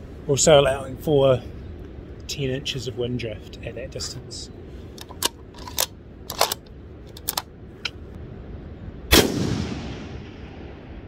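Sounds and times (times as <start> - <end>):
rifle clicks: 5.0 - 8.0
rifle shot: 9.1 - 11.0.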